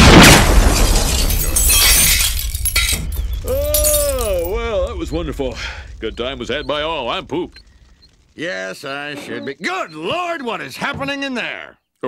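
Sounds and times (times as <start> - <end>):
glass shattering: 0.0 - 4.6.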